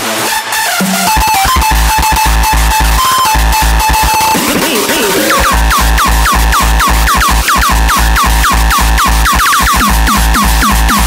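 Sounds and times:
stepping synth lead: 0.2 - 11.0
distorted kick drums pounding: 0.8 - 11.0
wobbling synth bending in pitch: 0.8 - 11.0.

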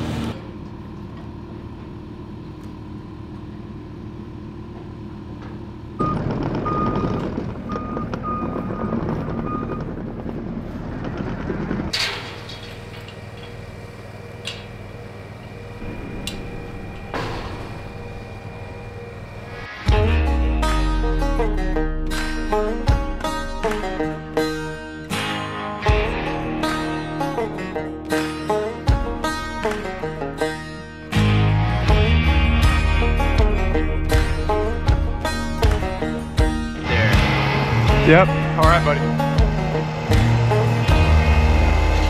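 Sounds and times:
vehicle engine running: 0.0 - 42.0.

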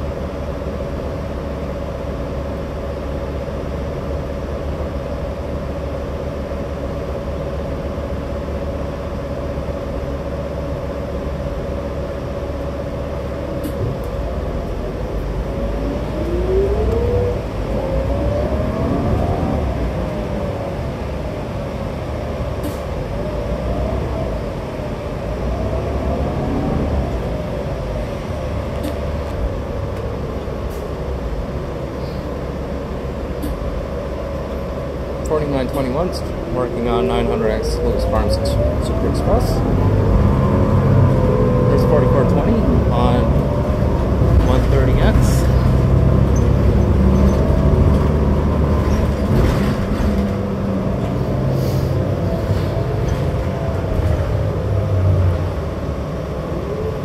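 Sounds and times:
bus drivetrain drone: 0.0 - 57.0
bus engine accelerating: 0.0 - 57.0.

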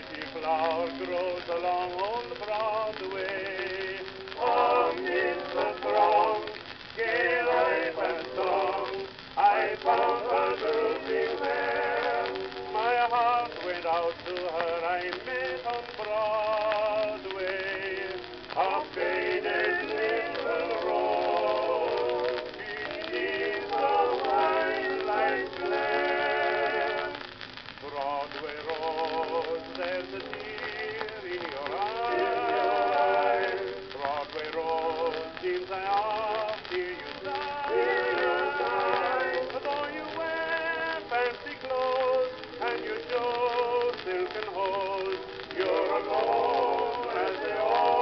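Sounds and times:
old record of male quartet with orchestra: 0.0 - 48.0.

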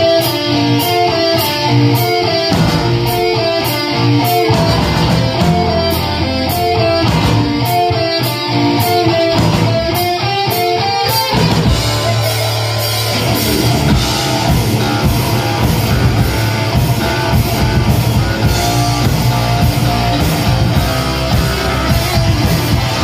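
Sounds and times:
electric guitar riff: 0.0 - 23.0
heavy metal band playing: 0.0 - 23.0.

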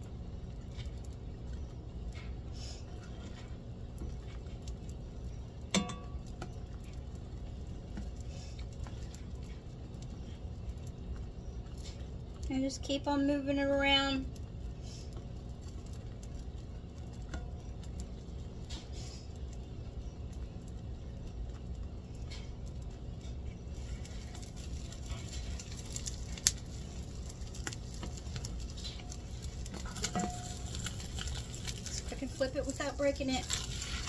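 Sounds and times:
eggs sizzling in a skillet: 0.0 - 34.0
metal spatula scraping a pan: 29.7 - 31.6.

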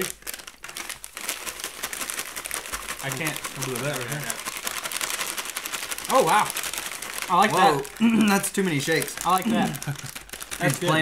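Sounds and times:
plastic snack bag crinkling: 0.0 - 11.0.

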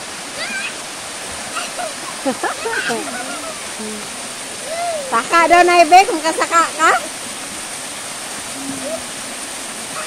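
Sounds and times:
waterfall pouring into pool: 0.0 - 10.0.

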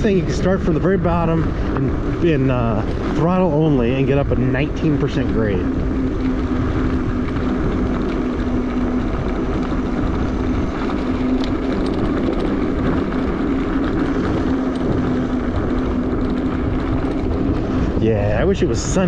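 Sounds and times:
electric bike motor humming: 0.0 - 19.0
tyres rumbling on dirt road: 0.0 - 19.0
wind on microphone: 0.0 - 19.0.

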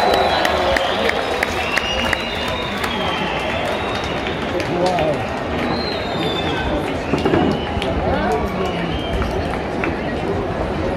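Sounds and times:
crowd chatter: 0.0 - 10.9.

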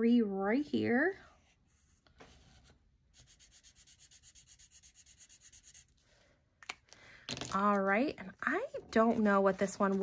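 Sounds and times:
felt-tip marker scratching paper: 1.4 - 6.0.

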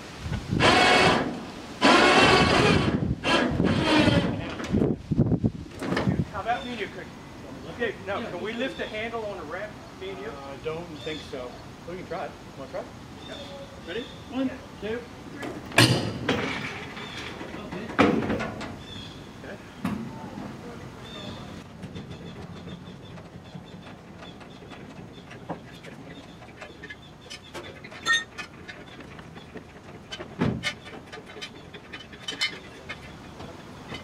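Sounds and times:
dolly rattling and rolling: 0.6 - 5.0, 14.9 - 19.2, 19.8 - 34.0
metal clunks and knocks: 5.7 - 6.3, 15.3 - 19.0, 19.8 - 34.0.

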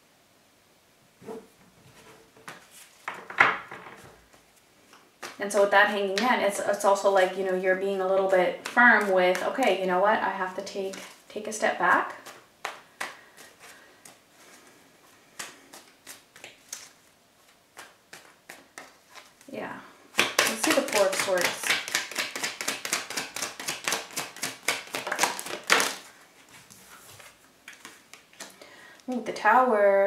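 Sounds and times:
cards being shuffled: 8.1 - 9.7, 11.9 - 14.5, 15.3 - 19.5, 20.2 - 29.3.

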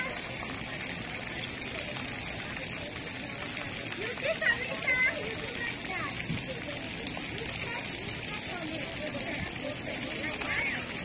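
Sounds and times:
water jets spraying onto concrete: 0.0 - 11.0.

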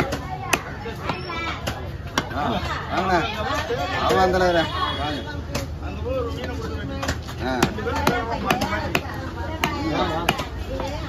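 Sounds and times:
cleaver chopping on wooden block: 0.0 - 2.4, 6.4 - 10.9.

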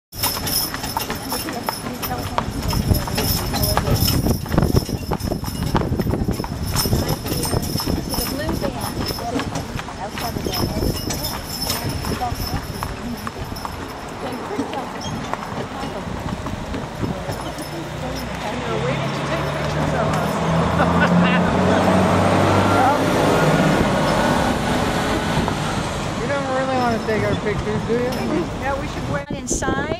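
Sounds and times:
people talking indistinctly: 1.0 - 29.9.

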